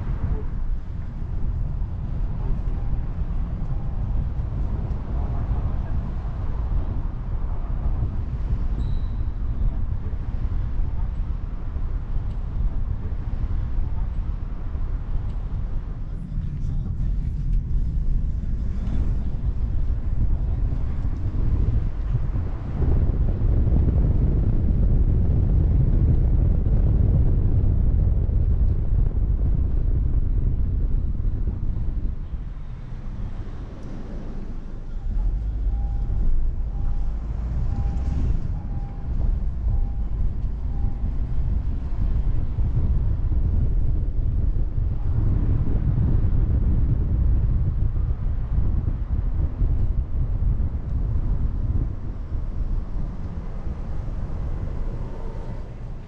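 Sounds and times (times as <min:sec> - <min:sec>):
car driving rumble: 0:00.0 - 0:56.0
wind buffeting microphone: 0:00.0 - 0:56.0
faint beeps: 0:34.7 - 0:41.4.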